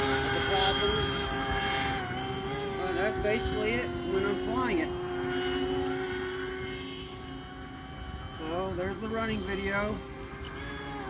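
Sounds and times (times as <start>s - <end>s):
drone propeller hum: 0.0s - 11.0s.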